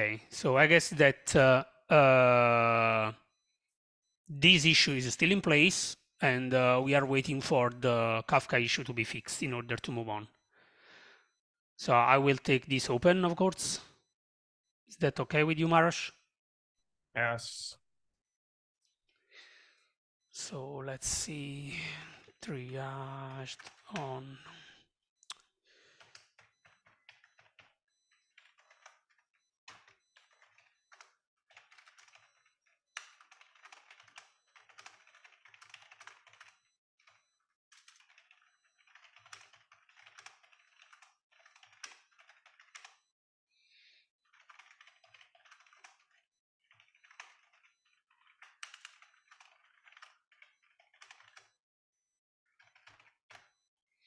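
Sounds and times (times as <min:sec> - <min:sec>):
computer keyboard typing: 0:23.3 - 0:24.4, 0:26.0 - 0:43.0, 0:44.2 - 0:51.6, 0:52.5 - 0:53.6.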